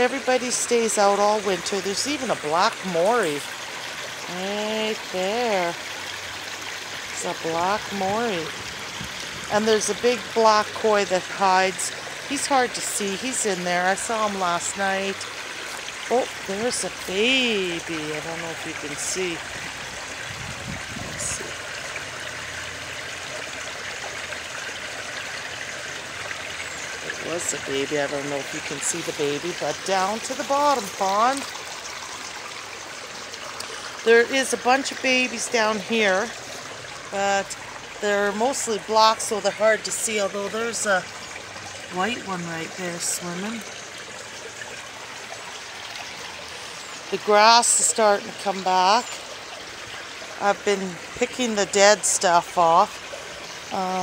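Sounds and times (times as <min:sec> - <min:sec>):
pond water trickling and splashing: 0:00.0 - 0:54.0.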